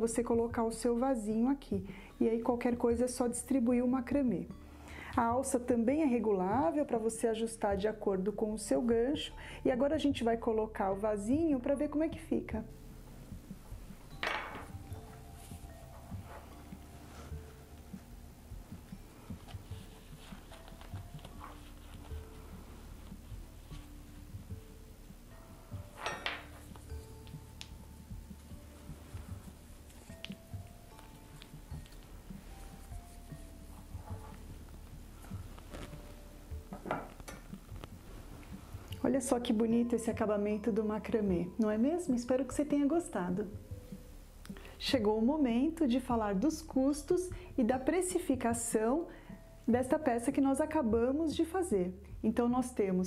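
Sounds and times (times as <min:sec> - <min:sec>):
faint small knocks and rustles: 0:13.3 - 0:24.6, 0:25.8 - 0:39.0
clinks and knocks of handling: 0:14.2 - 0:14.8, 0:25.9 - 0:27.4.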